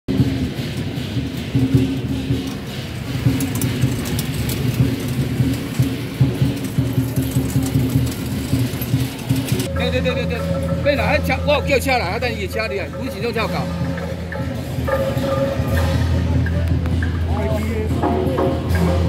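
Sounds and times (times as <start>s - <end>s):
crowd talking: 0.1s - 19.0s
percussive clashes: 0.1s - 19.0s
procession music held notes: 9.6s - 19.0s.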